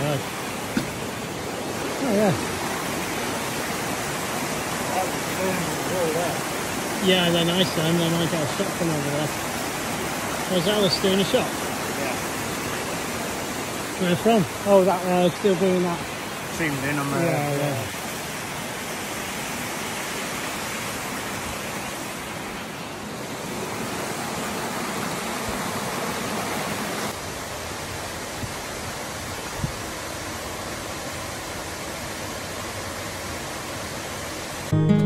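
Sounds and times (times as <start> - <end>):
stream rushing over rocks: 0.0 - 34.8
acoustic guitar music: 34.7 - 35.0.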